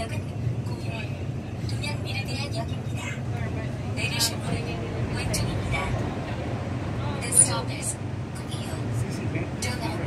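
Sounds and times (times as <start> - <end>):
subway train rumble: 0.0 - 10.0.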